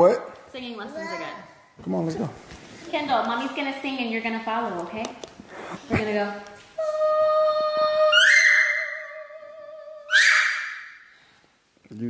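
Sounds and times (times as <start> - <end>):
toddler sung cries: 6.8 - 10.8.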